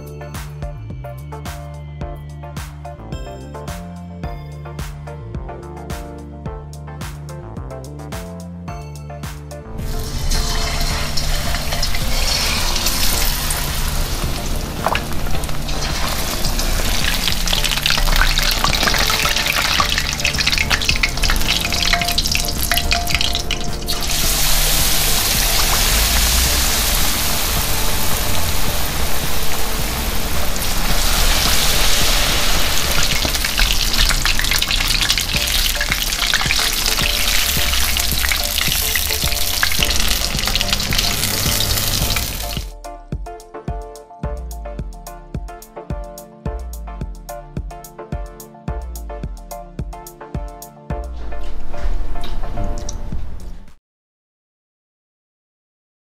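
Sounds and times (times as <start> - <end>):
fish frying in hot oil: 9.8 - 42.7.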